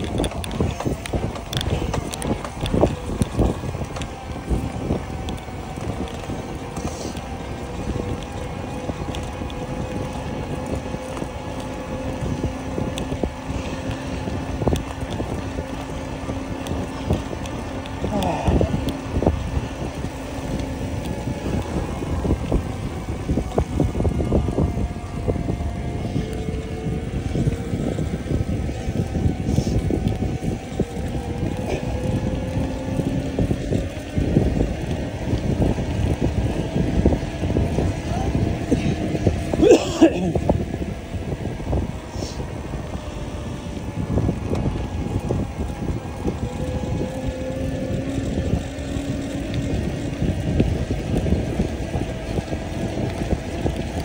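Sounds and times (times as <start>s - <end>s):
bicycle hum: 0.0s - 54.0s
wind buffeting microphone: 0.0s - 54.0s.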